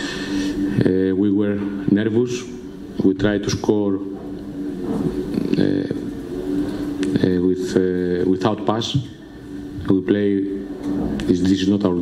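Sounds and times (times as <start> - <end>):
steady low hum: 0.0 - 12.0
man speaking into a microphone: 0.8 - 4.2, 5.3 - 6.2, 7.1 - 12.0.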